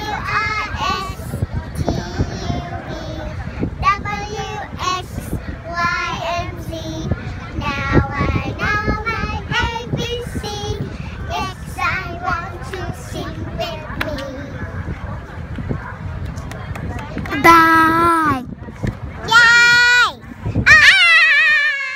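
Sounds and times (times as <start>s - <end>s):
girls singing together: 0.0s - 14.6s
wind rumbling on microphone: 0.0s - 21.9s.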